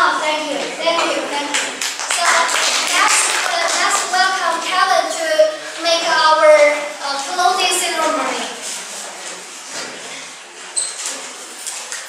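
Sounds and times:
voices: 0.0 - 8.6
audience applauding: 1.5 - 4.2.

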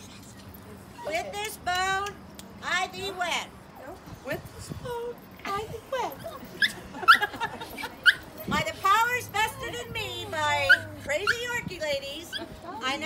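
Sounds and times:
people's voices: 0.0 - 13.0
small dog yipping: 6.2 - 7.3, 8.0 - 8.3, 10.6 - 11.5, 12.3 - 12.6.

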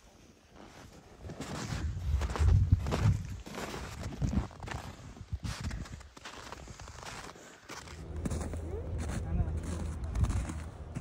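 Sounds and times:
footsteps in snow: 0.0 - 11.0.

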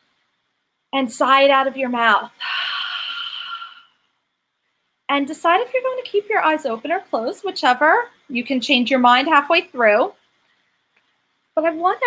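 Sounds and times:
woman sighing exhale: 2.4 - 4.0.

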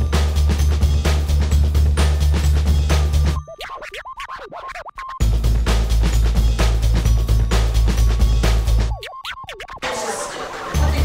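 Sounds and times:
backing music with beat: 0.0 - 11.0
record scratching: 3.5 - 5.2, 8.9 - 11.0.

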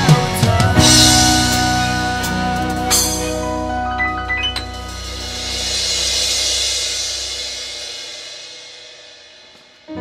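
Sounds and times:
cymbal crash ringing: 4.5 - 9.8.

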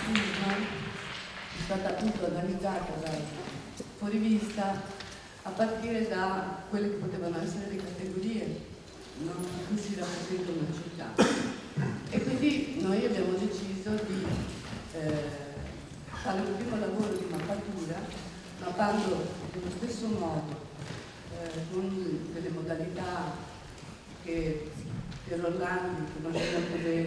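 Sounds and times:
woman speaking into a microphone: 0.0 - 27.0.

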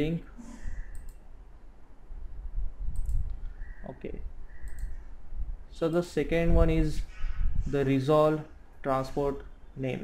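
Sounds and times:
computer mouse clicks: 0.4 - 1.2, 2.9 - 3.4, 4.6 - 5.0.

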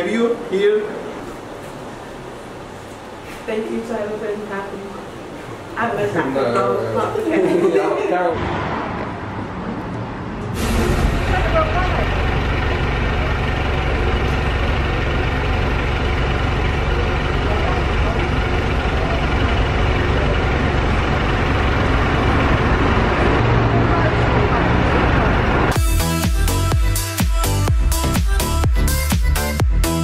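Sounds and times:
street traffic: 0.0 - 26.1
heavy vehicle engine rumbling: 8.3 - 26.8
music: 25.7 - 30.0.

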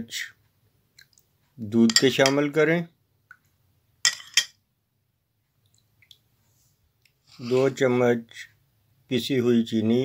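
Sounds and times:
metal spoon clinking on bowl: 1.9 - 2.4, 4.1 - 4.6.

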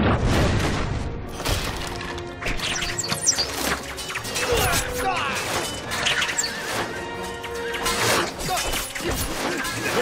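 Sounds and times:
dramatic film score music: 0.0 - 10.0.

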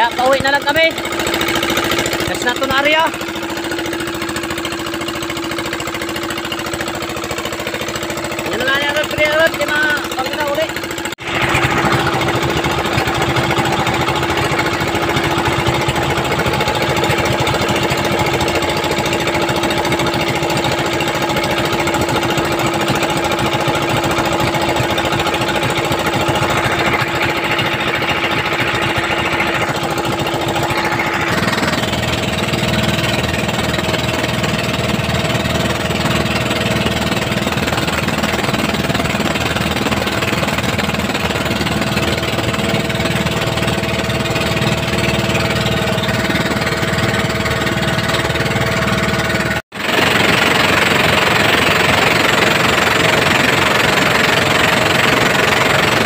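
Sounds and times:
boat engine running: 0.0 - 56.0.

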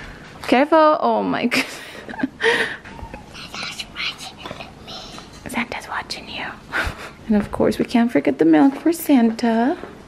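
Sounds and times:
whispered speech: 3.4 - 4.7.

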